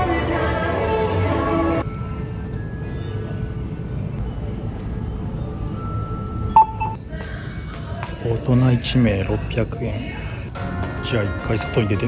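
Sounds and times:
ticket machine electronic beeps: 5.8 - 7.0.

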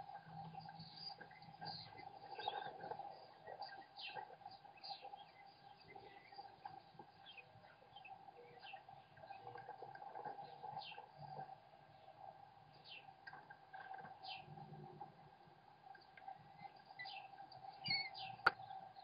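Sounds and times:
faint bird chirps: 0.0 - 19.0
steady faint hum: 0.0 - 19.0.

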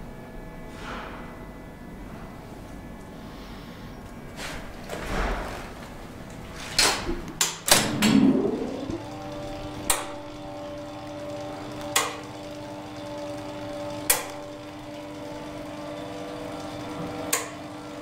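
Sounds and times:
elevator machinery hum: 1.4 - 18.0.

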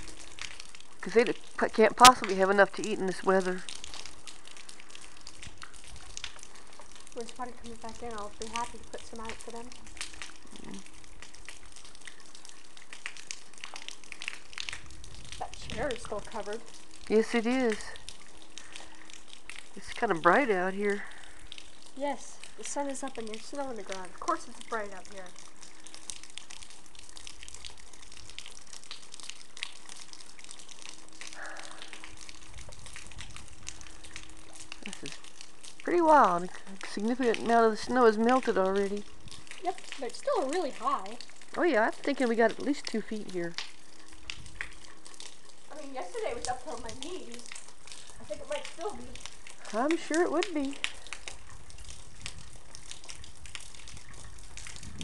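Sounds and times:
faint crackles: 0.0 - 55.0
meltwater dripping: 0.0 - 55.0
wind rumble on microphone: 14.7 - 16.3, 32.4 - 33.9, 44.2 - 44.8, 51.5 - 55.0.

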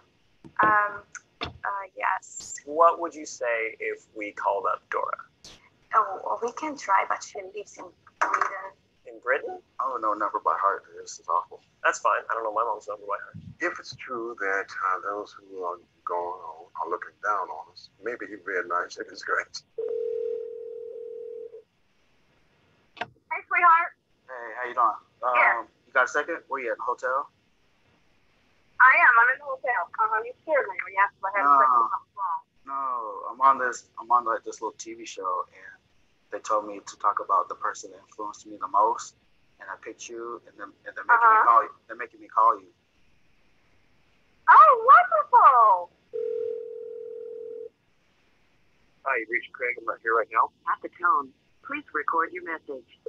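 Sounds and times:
telephone ringing tone: 19.8 - 21.6, 46.1 - 47.7.

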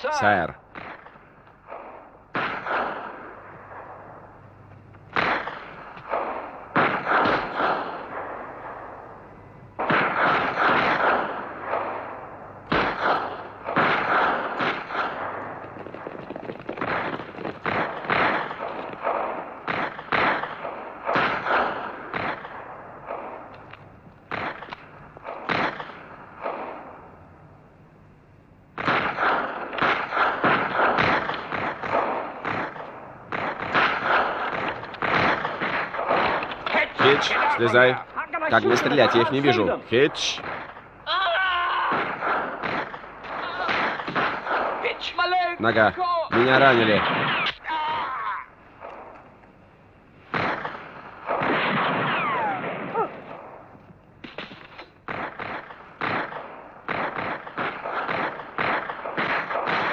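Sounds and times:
rifle shots echoing: 0.1 - 27.2, 28.7 - 41.2, 41.8 - 47.6, 48.6 - 59.9.

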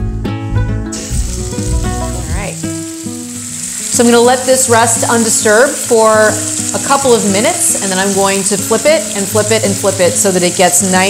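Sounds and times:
background music: 0.0 - 11.0
meat sizzling in a pan: 1.0 - 11.0.

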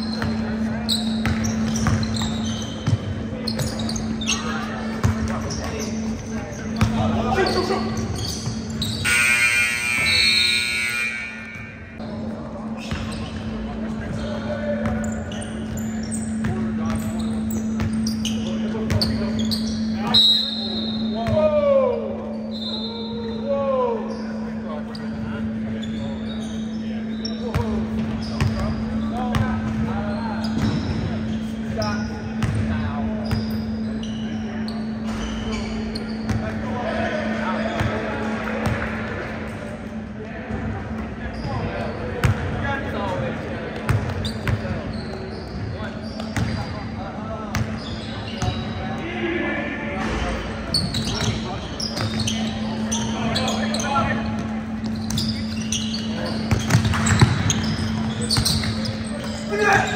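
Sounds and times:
sneaker squeaks: 0.0 - 38.9, 40.6 - 49.1, 50.0 - 59.9.

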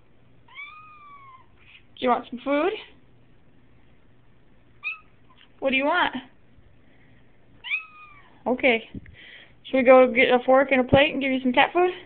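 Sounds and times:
cat meowing: 0.5 - 1.7, 4.8 - 5.2, 7.6 - 8.4.

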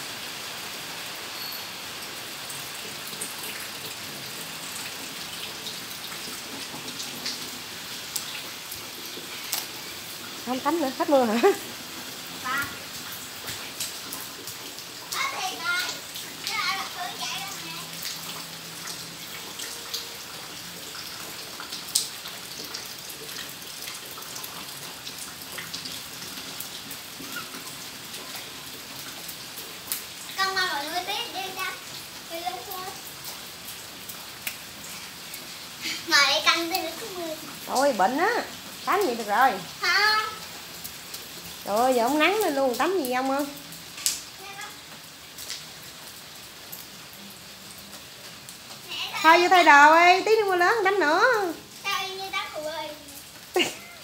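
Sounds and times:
light rain pattering and dripping: 0.0 - 54.0.

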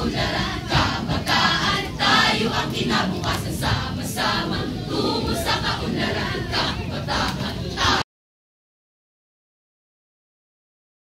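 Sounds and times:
speech choir reciting in unison: 0.0 - 8.0.

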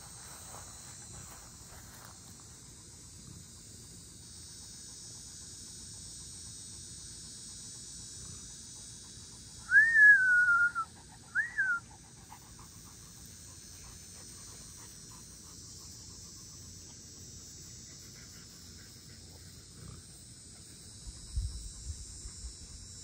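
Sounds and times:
insects buzzing: 0.0 - 23.0.

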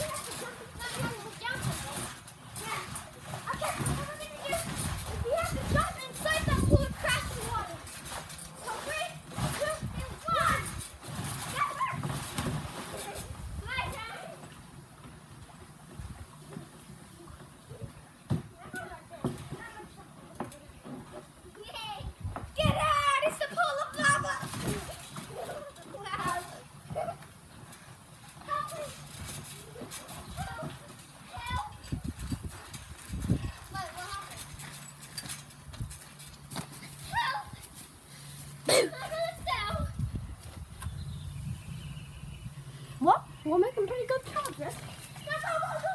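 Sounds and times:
dull thuds from trampoline jumps: 0.0 - 40.9, 43.0 - 45.9
children shouting and squealing: 21.6 - 27.3, 36.8 - 40.1, 44.3 - 45.9.

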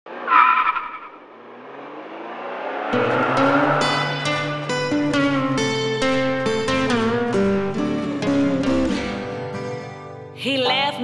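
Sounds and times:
whoosh: 0.1 - 6.6
tire squealing: 0.1 - 7.2
plucked guitar strings: 2.9 - 10.4.

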